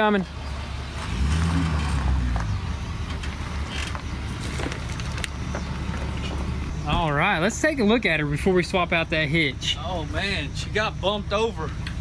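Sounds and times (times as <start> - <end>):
gravel crunching under tyres: 0.1 - 10.5
pickup truck engine running: 0.2 - 12.0.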